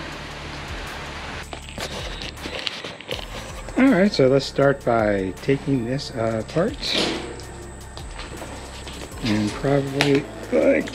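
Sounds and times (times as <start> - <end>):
rain falling: 0.0 - 10.9.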